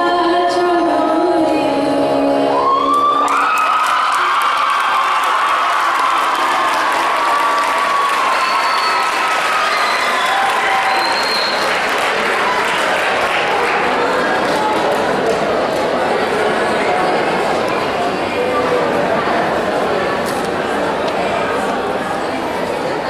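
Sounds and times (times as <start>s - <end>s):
girl singing: 0.0s - 3.2s
shouted whoops: 2.5s - 11.8s
audience applause and cheering: 2.6s - 16.5s
short high whistles: 8.3s - 11.8s.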